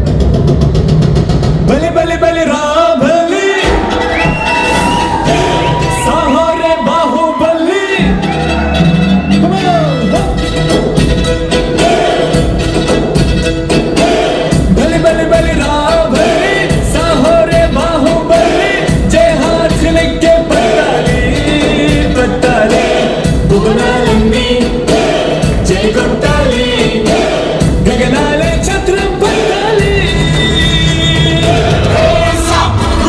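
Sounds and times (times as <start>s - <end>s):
steady drum beat: 0.0s - 2.6s, 3.6s - 7.2s, 7.9s - 33.0s
man singing into a microphone: 1.7s - 3.8s, 5.2s - 8.2s, 14.3s - 33.0s.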